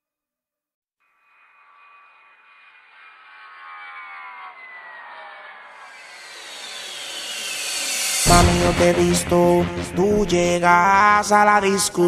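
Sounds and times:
thin tones sliding down: 1.2s - 10.1s
jet-like whoosh effect: 4.0s - 11.4s.

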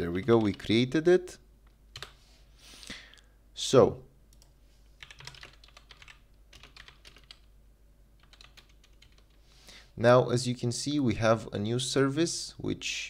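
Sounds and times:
typing on computer keyboard: 0.2s - 0.7s, 1.9s - 2.2s, 4.3s - 7.5s, 8.2s - 9.4s.

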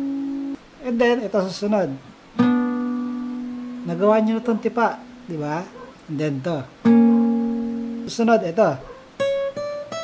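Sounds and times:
acoustic guitar note plucked: 0.0s - 0.6s, 2.4s - 5.4s, 6.8s - 8.2s, 9.2s - 10.0s.

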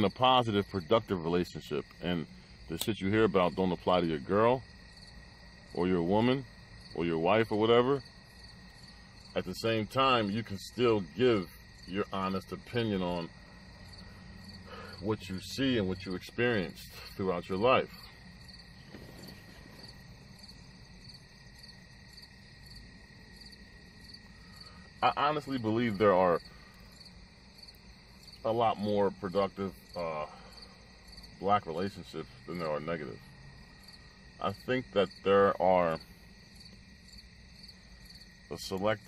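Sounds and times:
faint background noise: 0.0s - 39.0s
faint crickets chirping: 0.0s - 39.0s.

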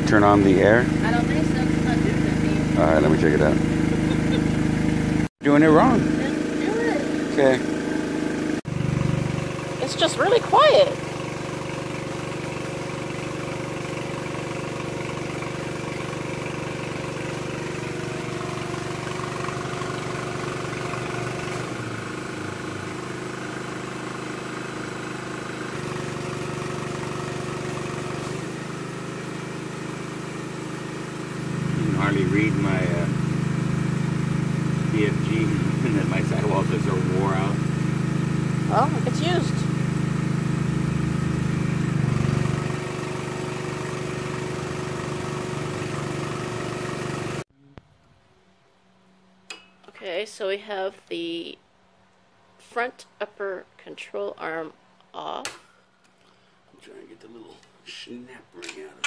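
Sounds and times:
air compressor running: 0.0s - 47.5s.

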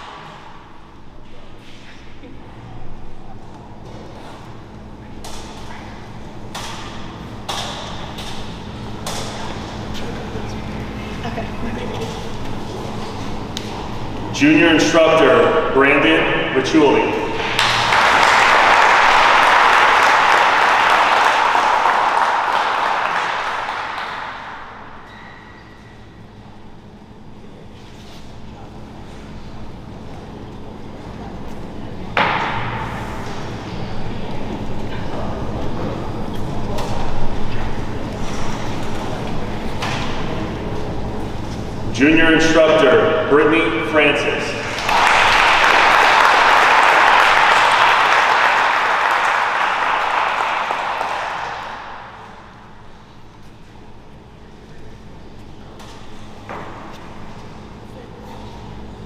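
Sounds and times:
man speaking over microphone: 14.3s - 17.4s, 41.9s - 44.7s
audience applauding: 17.3s - 25.1s, 44.6s - 52.7s.

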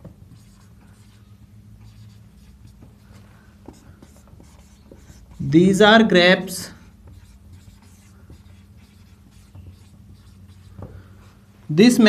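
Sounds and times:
marker scratching on whiteboard: 0.0s - 5.9s, 6.6s - 11.5s
steady low hum: 0.0s - 12.0s.

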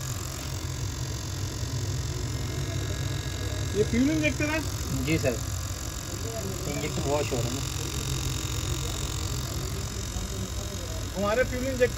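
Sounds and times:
pump humming: 0.0s - 11.9s.

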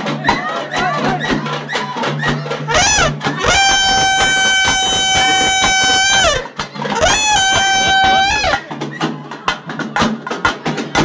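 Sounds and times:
wind instrument holding high note: 2.7s - 8.6s.

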